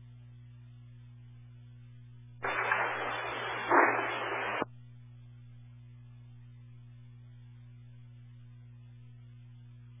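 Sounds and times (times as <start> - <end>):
steady hum: 0.0 - 10.0
radio static burst: 2.4 - 4.7.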